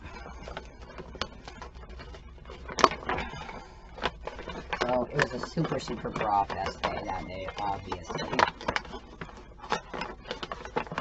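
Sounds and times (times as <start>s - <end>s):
paper bag crinkling and tearing: 0.0s - 11.0s.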